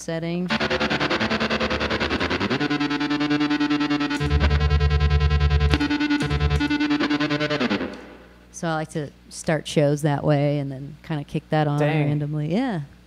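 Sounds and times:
overdriven guitar chords with tremolo: 0.5s - 8.4s.

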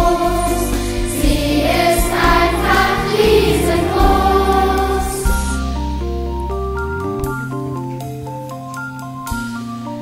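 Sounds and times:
children's choir singing: 0.0s - 5.6s
keyboard playing: 1.2s - 8.1s.

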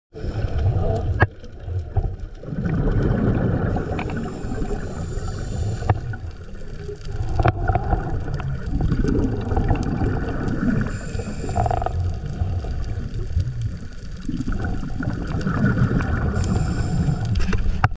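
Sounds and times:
underwater rumble of moving water: 0.1s - 17.9s.

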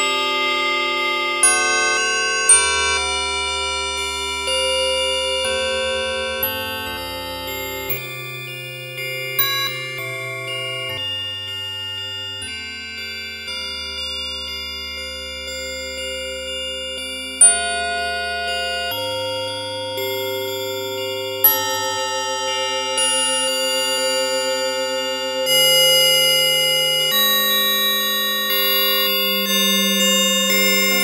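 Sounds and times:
bell-like synthesizer chords: 0.0s - 31.0s.

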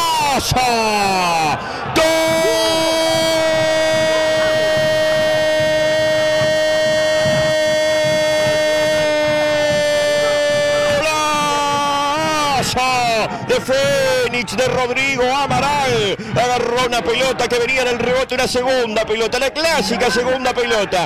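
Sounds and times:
commentator shouting goal cry: 0.0s - 6.4s, 10.0s - 16.7s.

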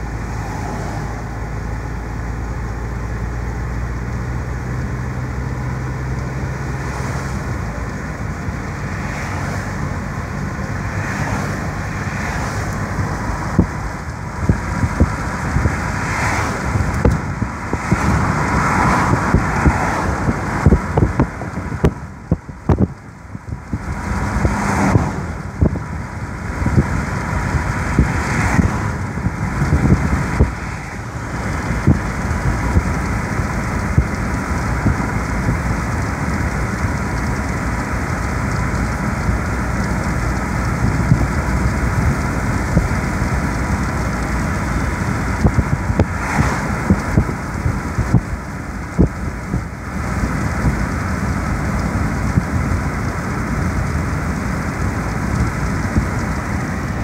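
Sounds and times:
road and wind noise in car: 0.0s - 57.0s.

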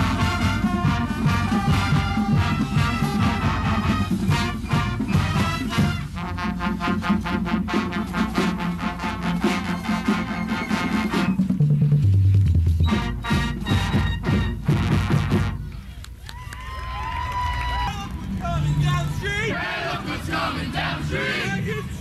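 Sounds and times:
low brass held notes: 0.0s - 11.3s
marching band brass and drums: 0.0s - 16.1s, 17.2s - 22.0s.

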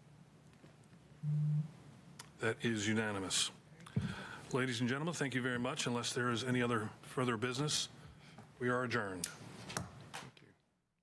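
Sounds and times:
low electronic beep: 1.2s - 1.7s.

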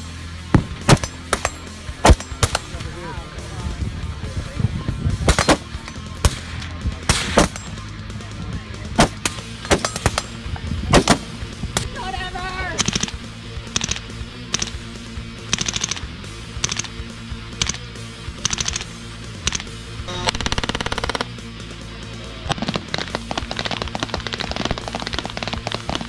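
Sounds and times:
background music: 0.0s - 26.0s
rifle shots: 0.5s - 3.0s, 5.2s - 7.8s, 8.9s - 11.9s, 12.8s - 21.4s, 22.5s - 26.0s.

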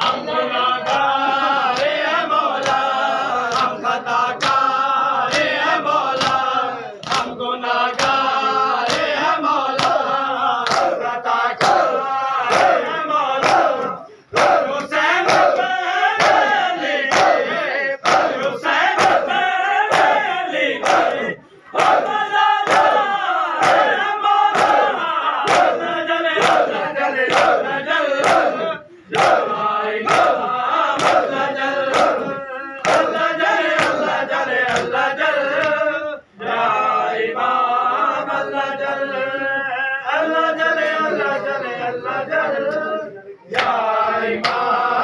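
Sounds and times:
men chanting in unison: 0.0s - 45.0s
hands slapping chests: 3.5s - 3.8s, 6.2s - 8.2s, 8.8s - 9.1s, 9.7s - 11.0s, 11.6s - 16.5s, 17.1s - 17.4s, 18.0s - 19.2s, 19.9s - 20.2s, 21.8s - 23.9s, 24.5s - 24.9s, 25.5s - 25.8s, 28.2s - 28.6s, 30.1s - 30.4s, 31.0s - 34.1s.

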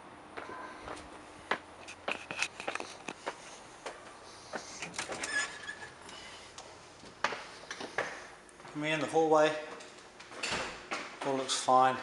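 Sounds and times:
footsteps: 0.4s - 10.4s
door squeaks: 5.0s - 6.0s.

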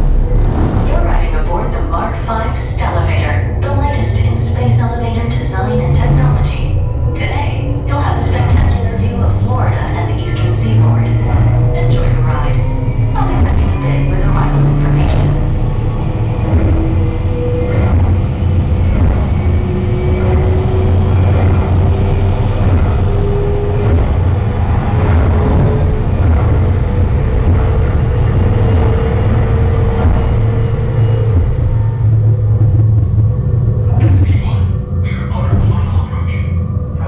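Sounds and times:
loud low rumble: 0.0s - 37.0s.

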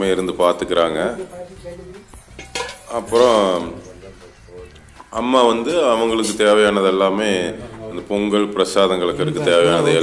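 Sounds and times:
sticks and pot clinking: 2.2s - 3.8s.

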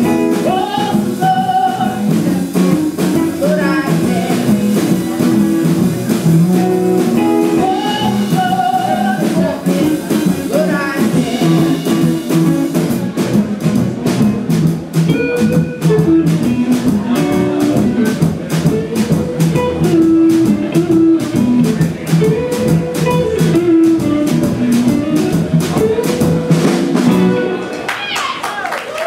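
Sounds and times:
drum kit beat: 0.0s - 27.6s
electric bass: 0.0s - 27.8s
electric guitars: 0.0s - 28.2s.

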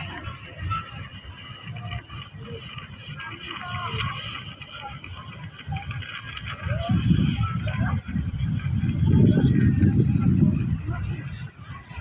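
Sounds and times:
faint distant voices: 0.0s - 12.0s
low uneven rumble: 0.0s - 12.0s.

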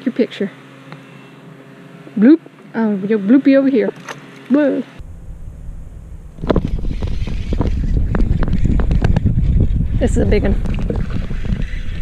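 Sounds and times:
wind rumbling on microphone: 5.0s - 12.0s.

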